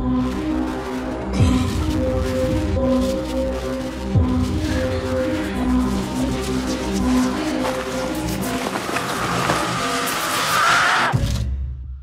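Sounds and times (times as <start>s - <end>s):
trailer music: 0.0s - 12.0s
screeching tone: 9.1s - 11.2s.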